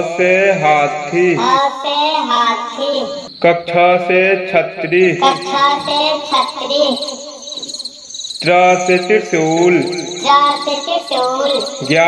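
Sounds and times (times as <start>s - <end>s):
high cricket-like chirring: 0.0s - 12.0s
wavering pitched tone: 4.7s - 7.9s, 8.5s - 12.0s.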